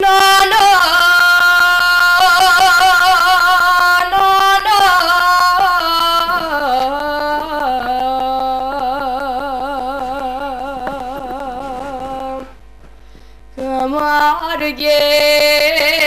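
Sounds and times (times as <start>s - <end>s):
girl singing folk song: 0.0s - 12.6s, 13.5s - 16.0s.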